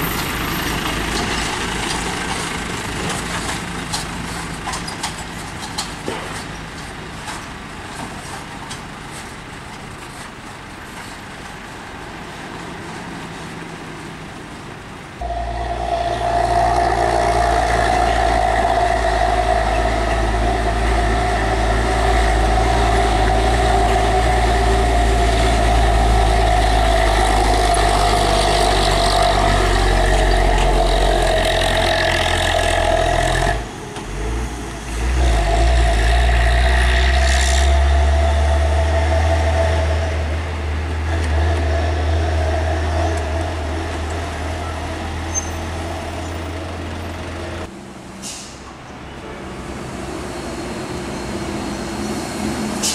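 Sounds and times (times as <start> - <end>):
truck diesel engine running: 0.0 - 10.9, 14.0 - 47.7.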